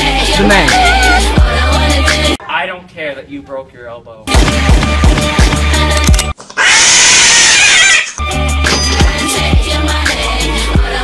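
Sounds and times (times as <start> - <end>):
hip-hop music with a beat: 0.0 - 2.4, 4.3 - 6.3, 8.2 - 11.0
cat yowling: 6.6 - 8.2.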